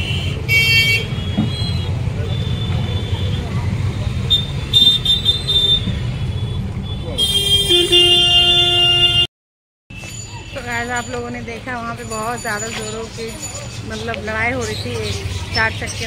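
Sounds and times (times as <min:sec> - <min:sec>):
vehicle horns honking: 0:00.0 - 0:03.5, 0:04.2 - 0:09.3
street traffic rumbling: 0:00.0 - 0:09.3, 0:09.9 - 0:16.0.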